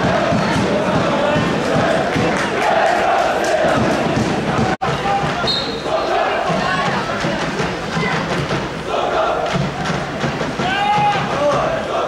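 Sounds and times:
voices shouting: 0.0 - 9.7, 10.6 - 12.0.

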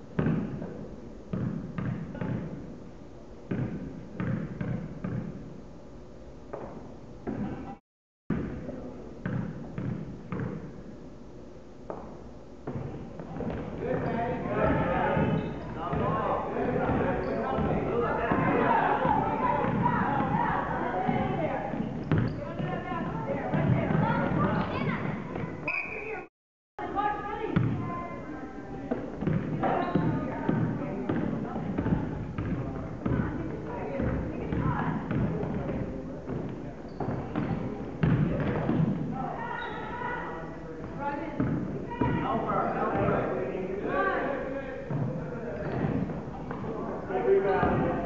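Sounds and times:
basketball dribbled on hardwood floor: 1.3 - 2.5, 3.5 - 5.4, 9.2 - 10.6, 29.2 - 33.3.

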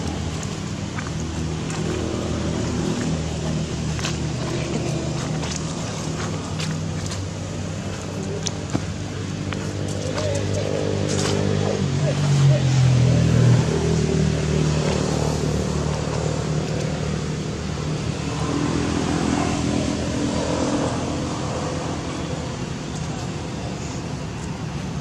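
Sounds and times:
vehicle engine running: 0.0 - 25.0
people's voices: 9.8 - 13.5.

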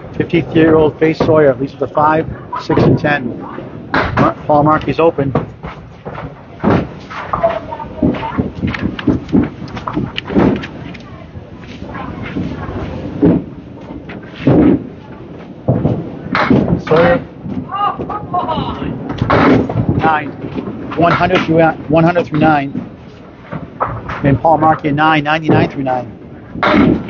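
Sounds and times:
bowling pins and balls clacking: 0.0 - 27.0
people talking: 0.2 - 5.4, 7.3 - 8.7, 16.8 - 19.0, 20.0 - 20.4, 21.0 - 22.8, 24.2 - 26.1.

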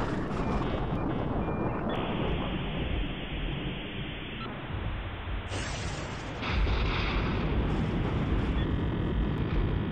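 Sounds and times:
faint high beeping tones: 0.0 - 4.5.

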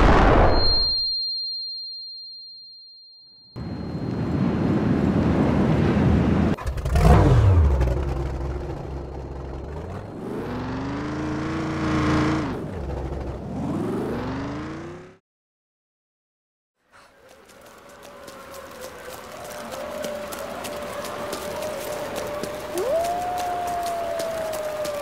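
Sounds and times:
buggy engine running rough: 6.6 - 15.2.

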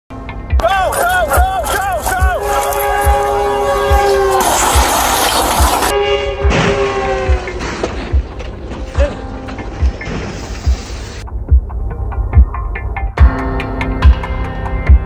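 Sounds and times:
music beat: 0.4 - 5.9, 6.9 - 15.0
train horn blaring: 2.3 - 8.2.

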